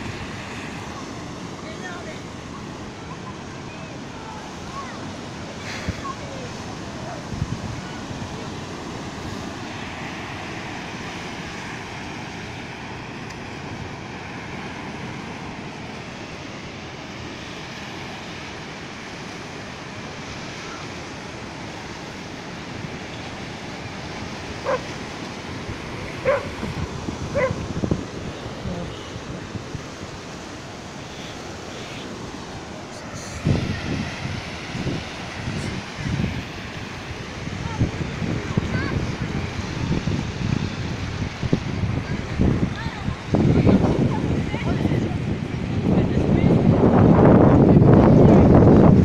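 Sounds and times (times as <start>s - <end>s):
surf washing over sand: 0.0s - 49.0s
wind: 0.0s - 49.0s
dog barks: 24.6s - 24.9s, 26.2s - 26.6s, 27.3s - 27.6s.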